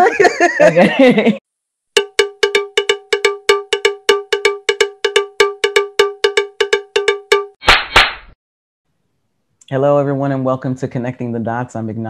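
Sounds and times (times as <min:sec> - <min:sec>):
pitched metallic taps: 0:02.0 - 0:07.6.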